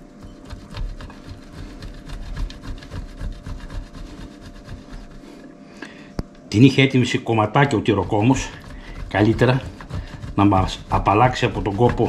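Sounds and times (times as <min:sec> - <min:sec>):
cheese grated on metal grater: 0:00.0 - 0:05.4, 0:07.4 - 0:12.0.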